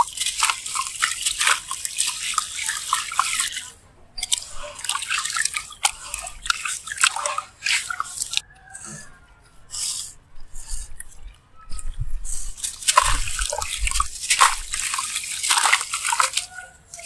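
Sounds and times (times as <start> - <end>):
water dripping and splashing: 0.0 - 17.0.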